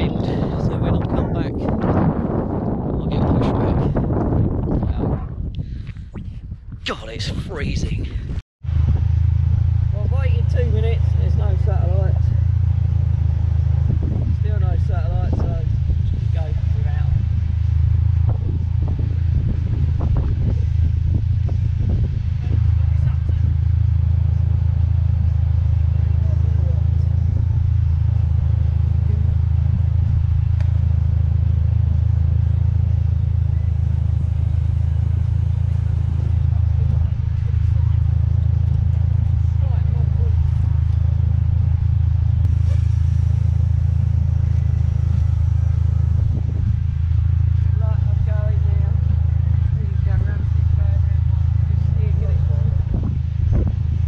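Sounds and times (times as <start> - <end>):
car engine idling: 0.0 - 6.1, 7.1 - 54.0
faint voices: 32.4 - 41.4.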